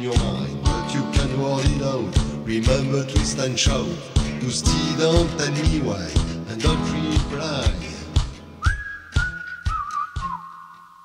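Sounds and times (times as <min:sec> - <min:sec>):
song beats: 0:00.0 - 0:11.0
whistled melody: 0:08.4 - 0:11.0.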